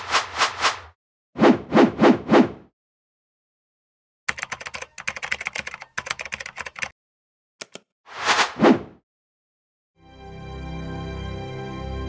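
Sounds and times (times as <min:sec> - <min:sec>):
computer keyboard typing: 0:04.3 - 0:06.9, 0:07.6 - 0:07.8
quick clicks: 0:07.6 - 0:07.9.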